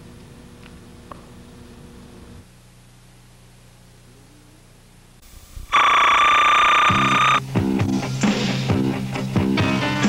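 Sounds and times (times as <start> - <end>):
high synthesizer note: 5.7 - 7.4.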